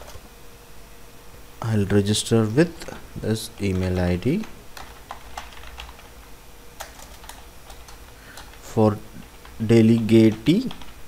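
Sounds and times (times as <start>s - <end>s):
computer keyboard typing: 3.5s - 6.2s, 6.8s - 11.0s.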